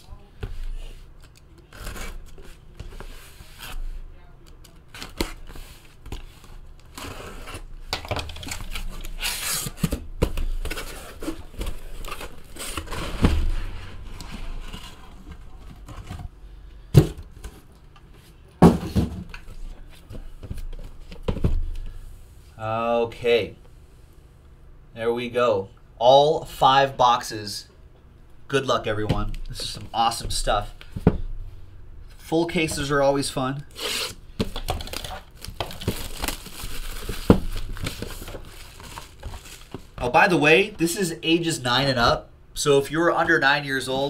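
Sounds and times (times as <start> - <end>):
cardboard flaps rustling: 8.1 - 16.3.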